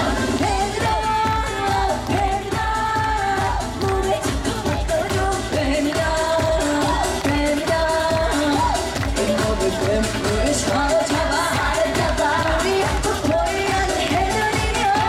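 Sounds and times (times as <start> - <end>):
live band with pulsing beat: 0.0 - 15.0
woman singing into a microphone: 0.0 - 15.0.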